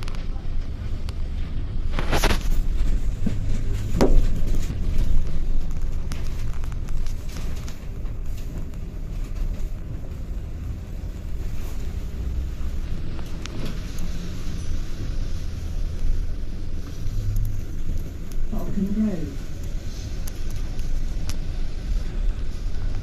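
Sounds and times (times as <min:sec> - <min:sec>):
bus engine rumble: 0:00.0 - 0:23.0
tyre noise on wet road: 0:00.0 - 0:23.0.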